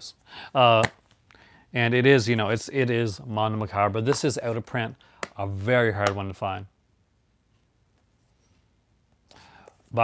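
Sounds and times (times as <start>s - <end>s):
man speaking: 0.0s - 0.9s, 1.7s - 6.7s
man drawing breath: 0.2s - 0.6s, 1.3s - 1.7s, 9.3s - 9.9s.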